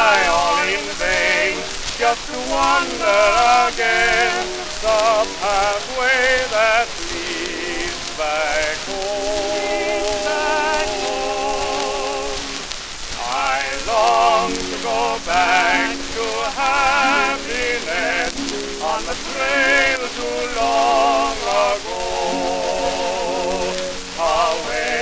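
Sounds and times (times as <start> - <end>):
male duet singing: 0.0 - 25.0
record surface hiss and crackle: 0.0 - 25.0.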